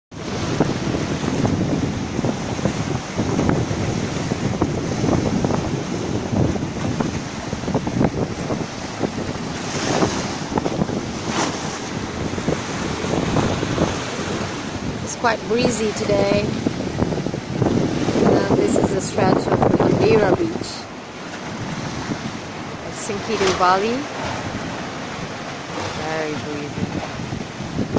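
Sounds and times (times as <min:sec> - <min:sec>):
small waves breaking on shore: 0:00.1 - 0:27.9
wind buffeting microphone: 0:00.1 - 0:27.9.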